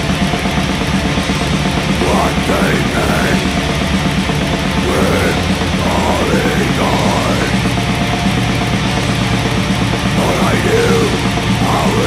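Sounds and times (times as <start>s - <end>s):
distorted electric guitars: 0.0s - 12.0s
fast drumming: 0.0s - 12.0s.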